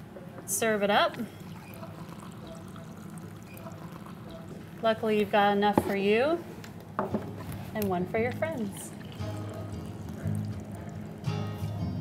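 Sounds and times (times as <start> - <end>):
coffee pouring into mug: 1.2 - 6.2, 8.3 - 11.5.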